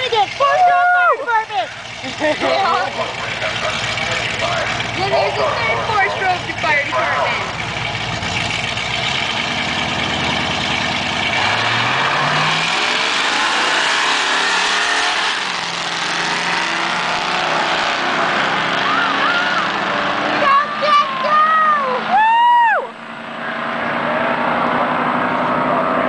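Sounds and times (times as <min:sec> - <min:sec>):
car engines revving: 0:00.0 - 0:26.0.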